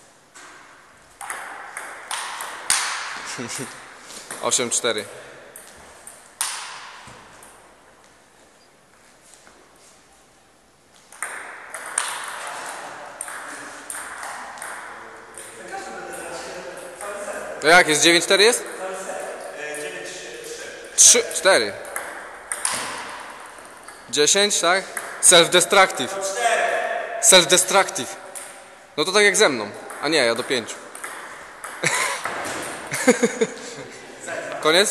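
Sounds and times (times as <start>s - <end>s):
table tennis ball hits: 0.4s - 4.6s, 5.6s - 7.6s, 11.0s - 15.6s, 21.8s - 24.1s, 24.8s - 25.3s, 28.2s - 28.9s, 29.7s - 32.9s
table tennis ball clicks: 21.8s - 24.1s.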